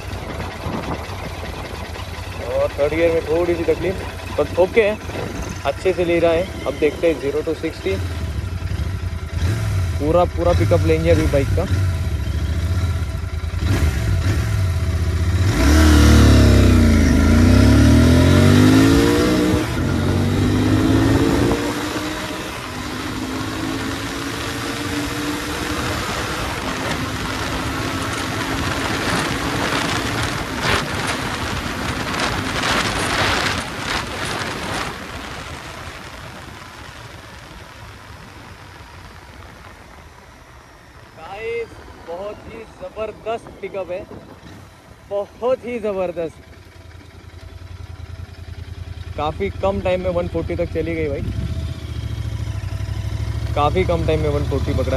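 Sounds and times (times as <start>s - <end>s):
motorcycle engine accelerating: 0.0s - 54.9s
rushing wind: 0.0s - 54.9s.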